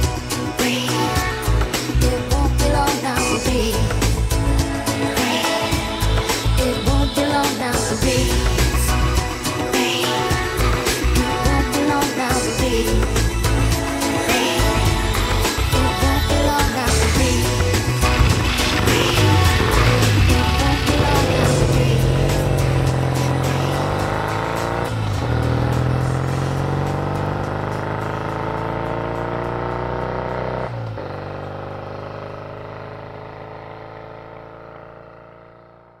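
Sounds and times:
pop music: 0.0s - 29.4s
motorcycle accelerating away: 17.0s - 36.0s.

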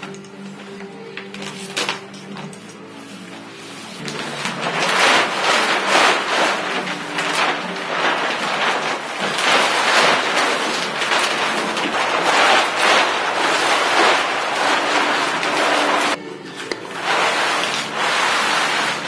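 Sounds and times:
plastic sheet crinkling rustle: 0.0s - 19.0s.

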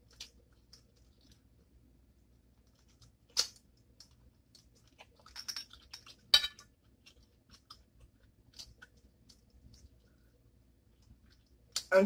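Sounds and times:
person chewing food: 0.0s - 11.9s.

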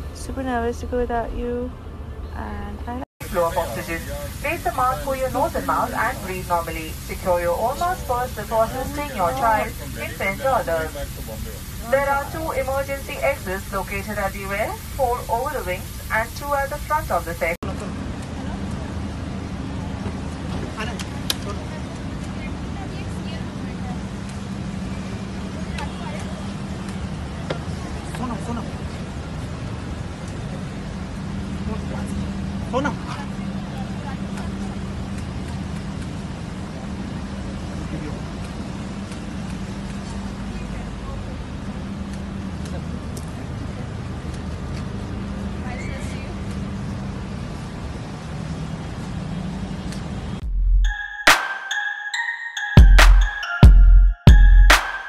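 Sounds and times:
outdoor noise: 0.0s - 55.0s
faint voices: 3.2s - 24.3s.

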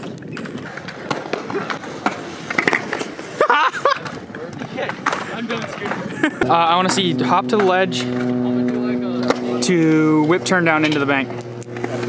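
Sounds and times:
hard wheels rolling on concrete: 0.0s - 12.0s
skateboard decks clacking: 0.0s - 12.0s
person speaking: 5.2s - 11.2s.

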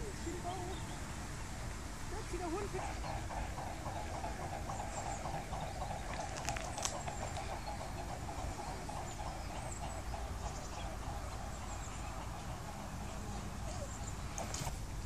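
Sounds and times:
dog whining: 13.6s - 14.0s.

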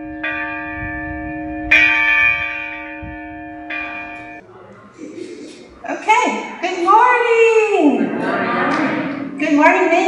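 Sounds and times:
congregation murmuring together: 4.4s - 10.0s
woman speaking: 5.2s - 8.2s, 9.3s - 10.0s.

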